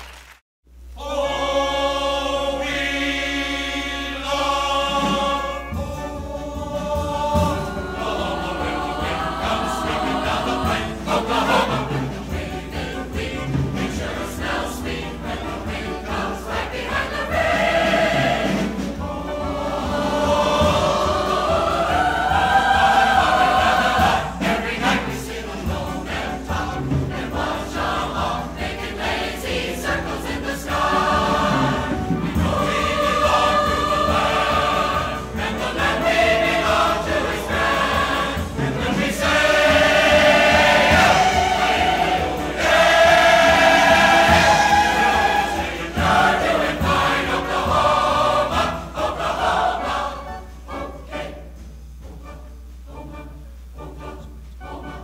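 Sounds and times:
mixed choir singing: 1.0s - 51.6s, 52.9s - 55.0s
instrumental accompaniment: 4.4s - 55.0s.

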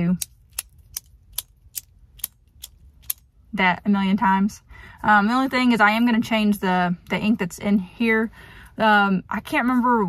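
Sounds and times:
sharp metal pen clicks: 0.1s - 3.3s.

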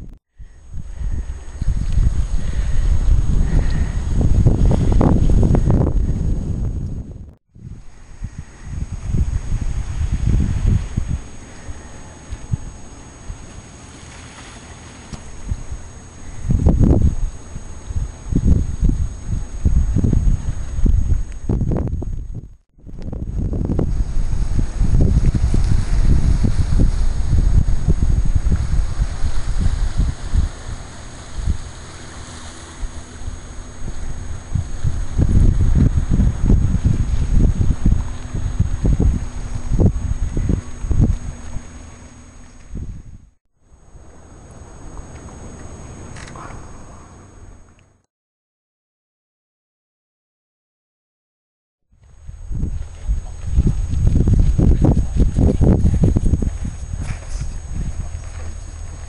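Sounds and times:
wind buffeting microphone: 0.0s - 47.8s, 52.0s - 59.0s.

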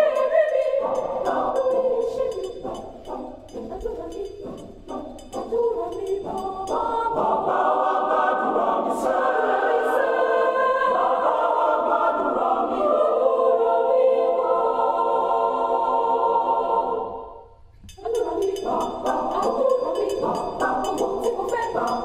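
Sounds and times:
mixed choir singing gospel: 0.0s - 22.0s
rhythmic clapping: 18.0s - 22.0s.

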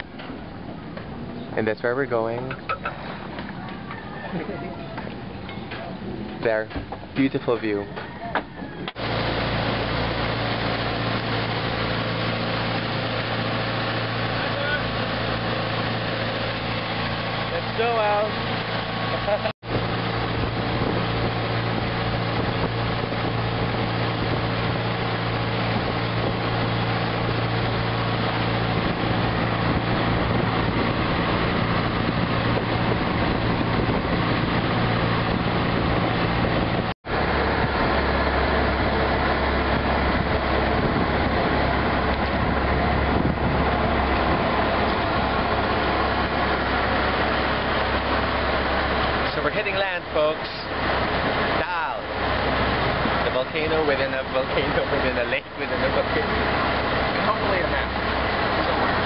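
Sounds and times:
boat engine running: 0.0s - 59.0s
rush of wind and water: 0.0s - 59.0s.

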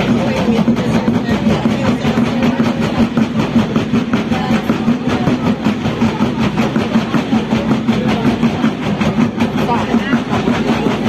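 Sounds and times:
drum line playing fast beat: 0.0s - 11.0s.

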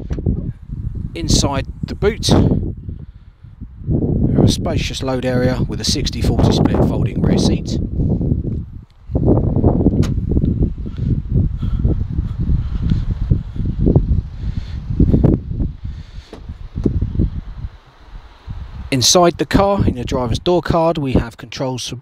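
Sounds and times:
microphone handling noise: 0.0s - 20.4s
wind buffeting microphone: 0.0s - 21.3s.

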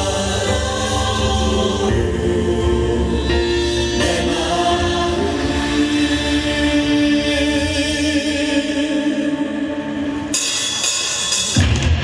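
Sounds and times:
choir singing held chords: 0.0s - 10.8s.

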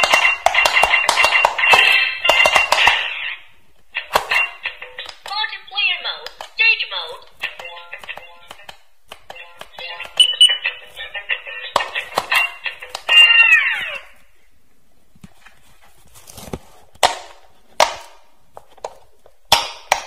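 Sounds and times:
toy handling taps: 7.3s - 10.6s, 11.7s - 13.3s
toy beeping electronic melody: 9.4s - 13.7s.

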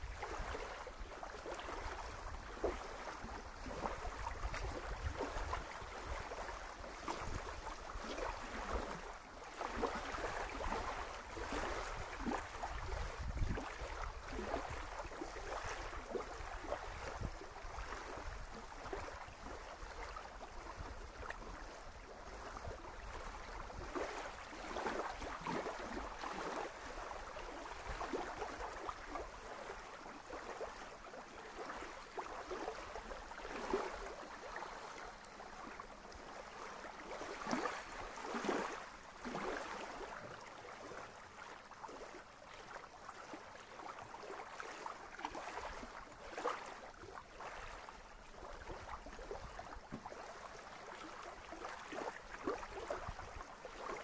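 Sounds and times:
wind rumble on microphone: 0.0s - 30.3s
waves lapping on sandy shore: 0.0s - 54.0s.

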